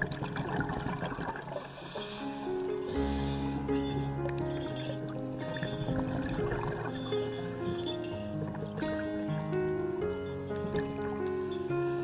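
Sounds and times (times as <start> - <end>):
water gurgling and splashing: 0.0 - 12.0.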